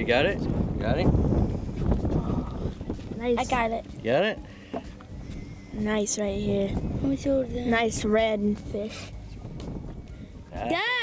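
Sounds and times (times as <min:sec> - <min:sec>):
wind: 0:00.0 - 0:11.0
water: 0:01.8 - 0:04.0.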